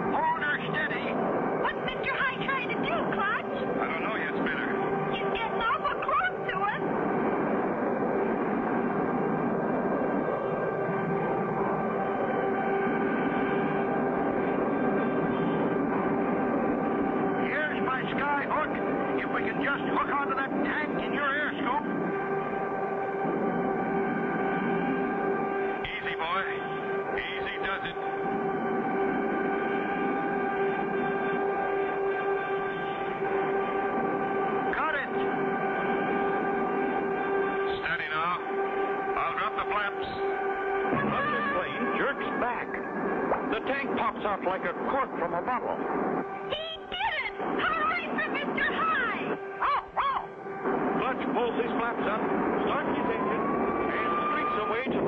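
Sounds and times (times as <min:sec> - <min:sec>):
plane engine drone: 0:00.0 - 0:55.0.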